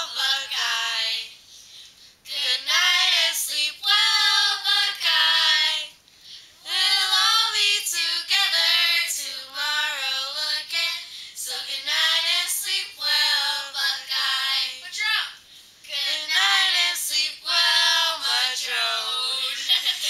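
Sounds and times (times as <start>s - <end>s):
girls singing together: 0.0s - 1.3s, 2.3s - 6.0s, 6.6s - 15.0s, 15.8s - 20.0s.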